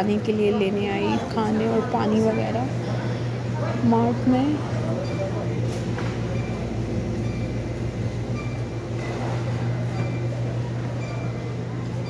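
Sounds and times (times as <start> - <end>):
refrigerator and ventilation hum: 0.0 - 12.0.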